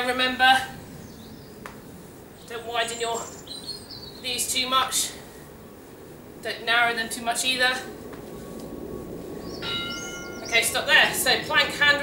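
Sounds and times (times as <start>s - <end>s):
timer bell-like chime: 9.6s - 10.5s.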